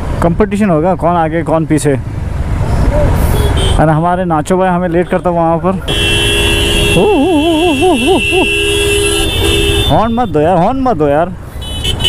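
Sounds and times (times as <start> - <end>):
vehicle horn steady tone: 5.9 - 10.4, 11.6 - 12.0.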